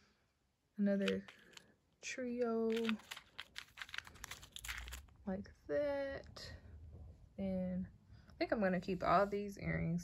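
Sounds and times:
plastic bags crinkling: 1.0 - 1.7, 2.4 - 5.2.

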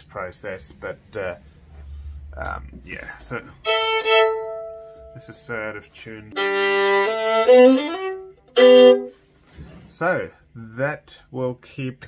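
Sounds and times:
person speaking: 2.3 - 3.8, 5.0 - 6.5
violin bowed chord: 3.6 - 9.2.

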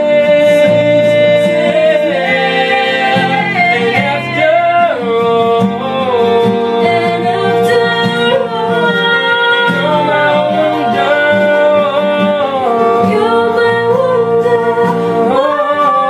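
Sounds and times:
acoustic guitars strumming: 0.0 - 16.0
woman singing long notes: 0.0 - 16.0.

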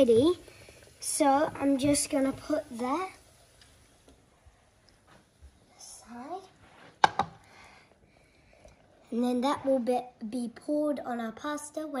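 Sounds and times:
saucepan knocking on worktop: 7.0 - 7.4.

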